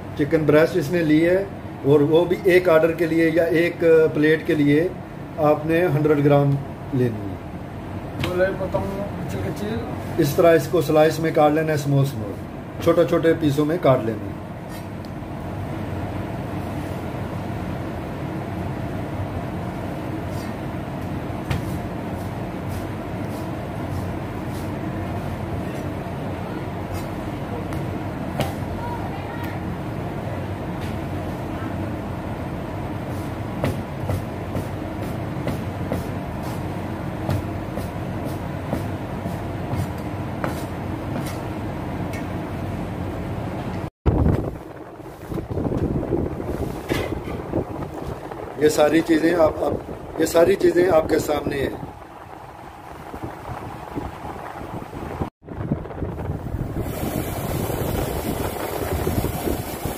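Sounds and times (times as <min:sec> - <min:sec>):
steady machine hum: 0:00.0 - 0:59.9.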